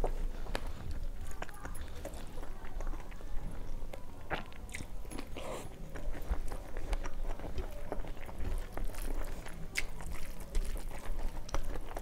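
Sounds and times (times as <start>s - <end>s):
wet chewing mouth clicks: 0.0s - 12.0s.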